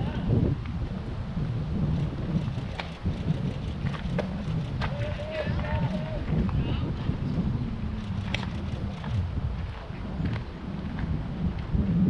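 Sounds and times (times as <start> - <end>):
wind rumbling on microphone: 0.0 - 12.0
distant players calling out: 4.8 - 6.7.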